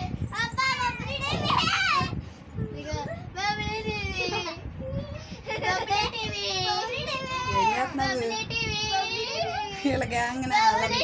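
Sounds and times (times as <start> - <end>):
young children chattering and squealing: 0.3 - 11.0.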